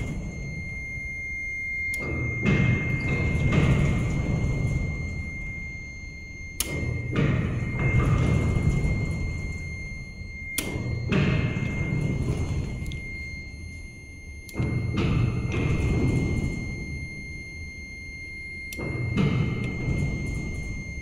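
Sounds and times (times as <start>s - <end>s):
thin high whine: 0.0s - 21.0s
elevator click: 6.6s - 9.3s.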